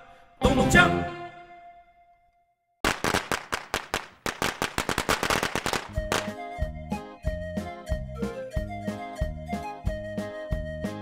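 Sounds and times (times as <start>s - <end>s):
firecrackers crackling: 2.8s - 6.5s.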